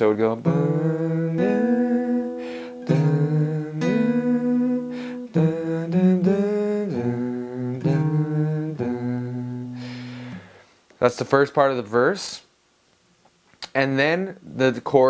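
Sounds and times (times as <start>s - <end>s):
fingerpicked acoustic guitar melody: 0.1s - 10.6s.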